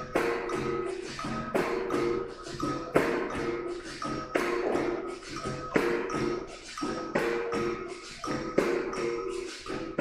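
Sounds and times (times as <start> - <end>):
berimbau twanging rhythm: 0.0 - 10.0.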